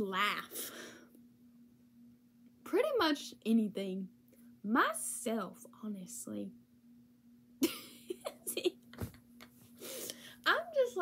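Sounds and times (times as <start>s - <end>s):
woman laughing: 7.6s - 9.2s.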